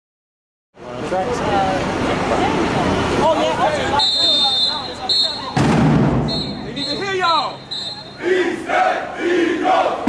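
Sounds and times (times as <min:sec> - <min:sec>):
marching band members shouting: 0:03.7 - 0:10.0
drum and cymbal hit: 0:05.5 - 0:06.6.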